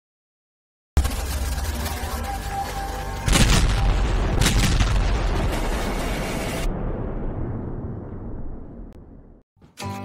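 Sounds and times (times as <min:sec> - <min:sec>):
deep rumble: 0:03.2 - 0:09.4
loud boom with whoosh: 0:03.3 - 0:09.4.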